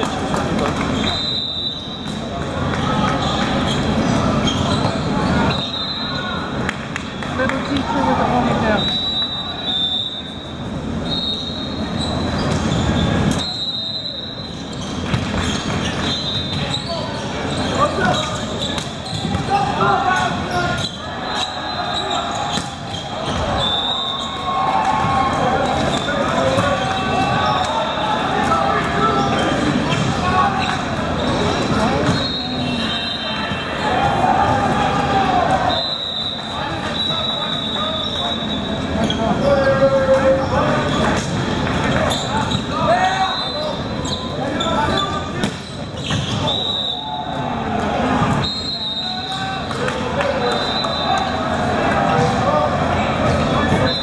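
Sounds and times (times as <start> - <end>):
players calling and shouting: 0.0 - 54.0
spectators' voices: 0.0 - 54.0
volleyball hit by hands: 45.4 - 46.3.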